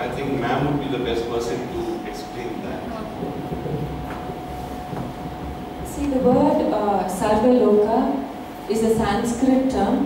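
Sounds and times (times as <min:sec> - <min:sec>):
steady low hum: 0:00.0 - 0:10.0
microphone handling rumble: 0:02.2 - 0:07.4.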